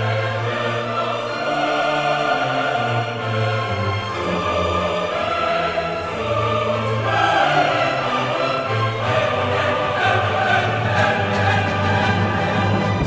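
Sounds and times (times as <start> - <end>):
full orchestra: 0.0 - 13.0
mixed chorus singing: 0.0 - 13.0.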